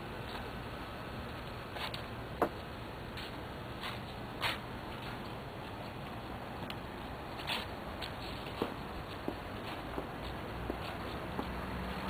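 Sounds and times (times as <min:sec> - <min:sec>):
soft footstep scuffs: 0:01.4 - 0:06.2, 0:06.9 - 0:12.0.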